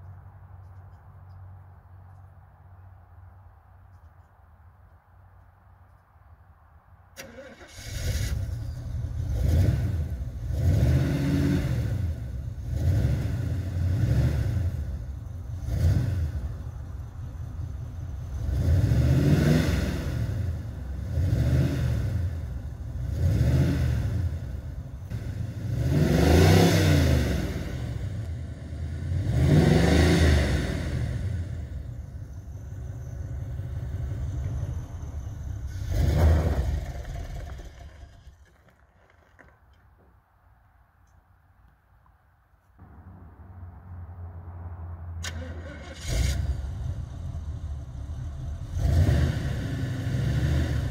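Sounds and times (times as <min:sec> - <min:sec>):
car engine revving roughly: 0:07.2 - 0:16.6, 0:18.2 - 0:31.9, 0:48.5 - 0:50.9.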